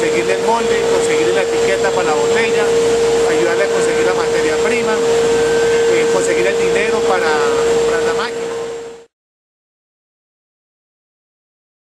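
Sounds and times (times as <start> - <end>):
machine drone: 0.0 - 9.1.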